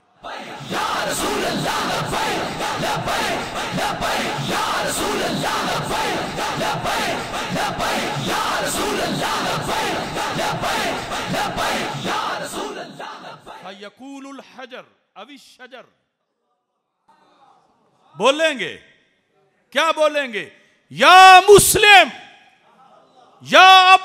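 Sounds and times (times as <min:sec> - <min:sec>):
crowd of men shouting slogans: 0:00.2 - 0:13.7.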